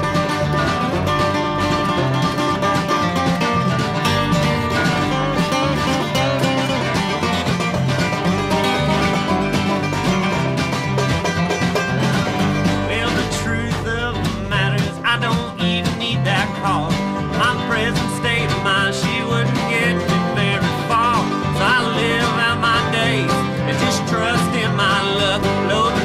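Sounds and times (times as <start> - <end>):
wavering lead melody: 0.0 - 12.9
banjo: 0.0 - 26.0
electric bass: 0.0 - 26.0
strummed acoustic guitar: 0.0 - 26.0.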